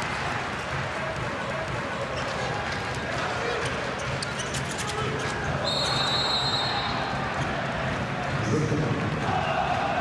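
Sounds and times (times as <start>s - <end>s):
arena crowd noise: 0.0s - 10.0s
referee's whistle held: 5.6s - 6.9s.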